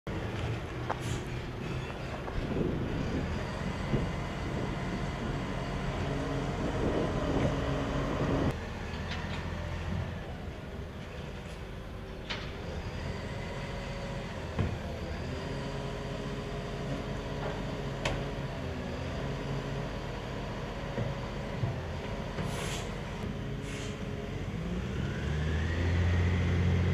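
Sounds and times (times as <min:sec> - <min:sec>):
garbage truck diesel engine: 0:00.1 - 0:26.9
hydraulic arm lifting bin: 0:00.2 - 0:26.9.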